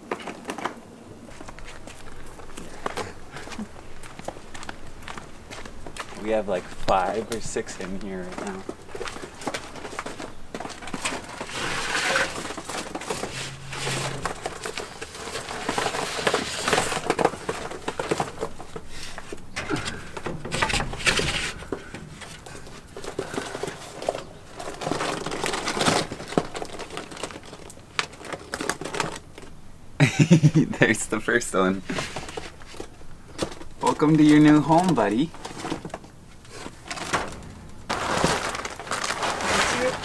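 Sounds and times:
box rustling: 7.5s - 29.6s, 31.8s - 40.0s.

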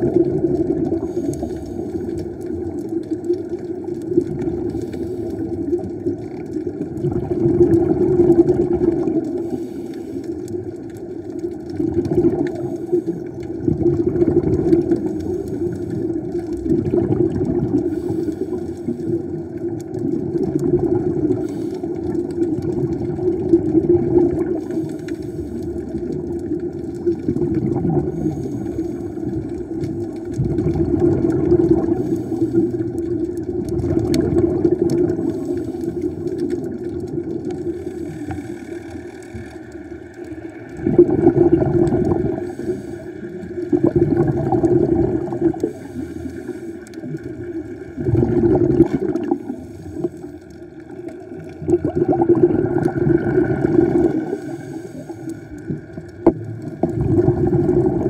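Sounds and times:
muffled underwater hum: 0.0s - 58.0s.

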